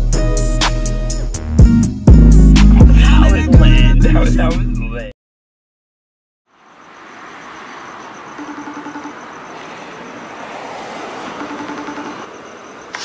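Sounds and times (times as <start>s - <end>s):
street traffic: 0.0s - 4.6s, 6.5s - 13.0s
phone video call ringing tone: 7.4s - 10.5s, 11.2s - 13.0s.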